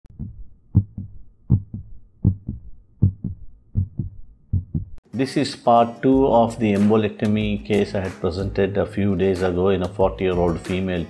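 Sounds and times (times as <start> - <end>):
heartbeat thumps: 0.1 - 5.0.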